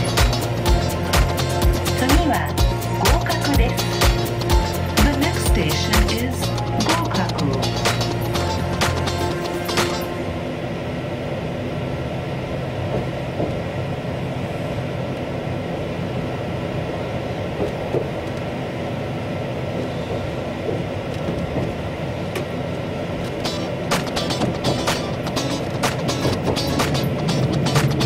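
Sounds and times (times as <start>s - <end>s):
train wheels rolling on rail: 12.2s - 28.0s.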